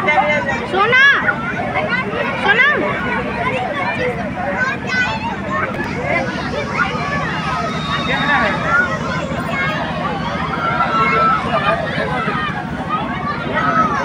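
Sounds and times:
children shouting and chattering: 0.0s - 14.0s
steady low hum: 0.0s - 14.0s.

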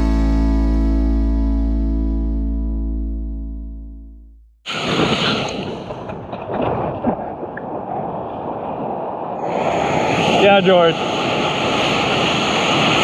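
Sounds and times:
music: 0.0s - 4.4s
rushing whitewater and surf: 4.7s - 13.0s
wind on microphone: 4.7s - 13.0s.

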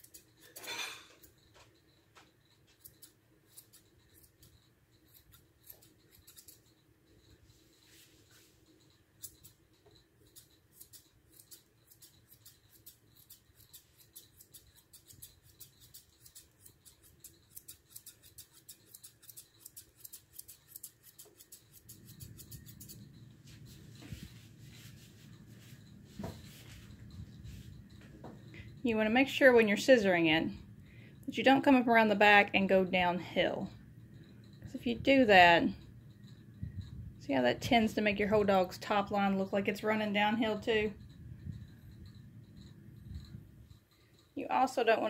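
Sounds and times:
shears blade clicks: 5.1s - 6.6s, 10.4s - 23.0s.

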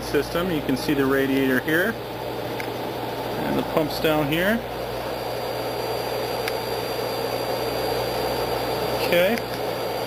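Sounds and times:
oven machine whir and hum: 0.0s - 10.0s.

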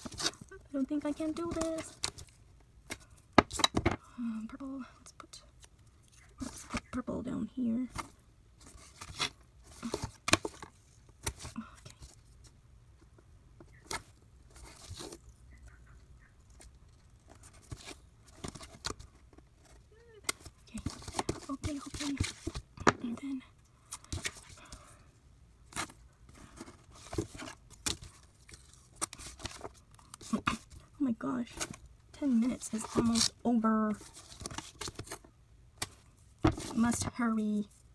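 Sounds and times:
paper rustling: 0.0s - 2.4s, 16.5s - 22.7s, 25.7s - 30.8s, 31.4s - 37.9s.

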